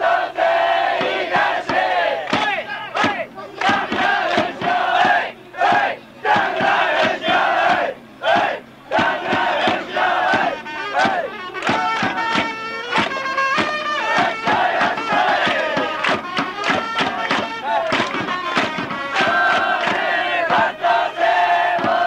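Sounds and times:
crowd chanting a cheering song: 0.0 - 22.0
beat of sharp hits: 1.0 - 20.8, 21.6 - 22.0.

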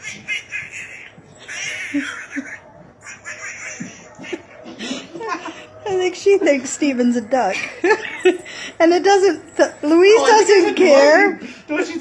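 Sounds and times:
man making squeaky duck noises: 0.0 - 3.9.

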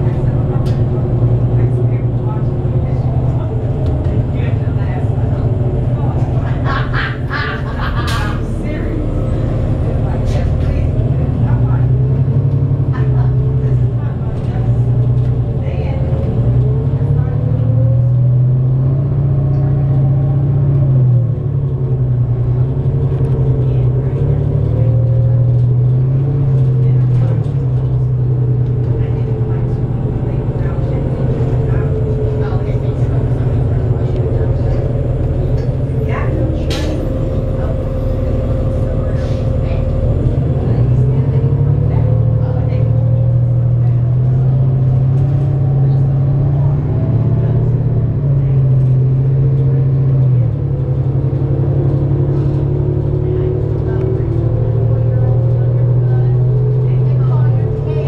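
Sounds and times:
bus diesel engine rumbling: 0.0 - 58.0.

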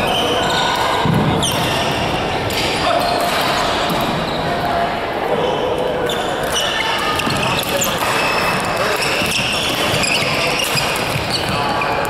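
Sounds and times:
murmur of voices: 0.0 - 12.0
shoes squeaking on court: 5.4 - 12.0.

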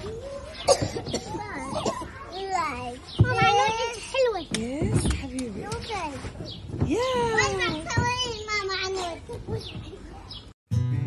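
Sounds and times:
voices: 0.0 - 10.5
sharp cough: 0.6 - 2.1.

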